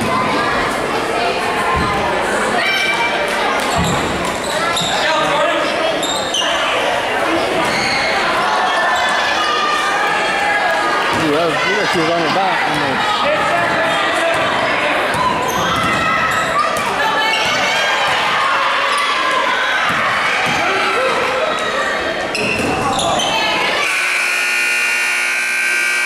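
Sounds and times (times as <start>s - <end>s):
scoreboard buzzer: 23.8s - 26.0s.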